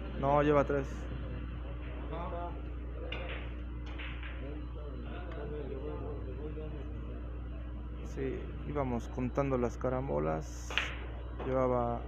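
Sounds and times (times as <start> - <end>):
steady low hum: 0.0 - 12.0
billiard balls clicking: 3.1 - 4.4, 10.7 - 11.1.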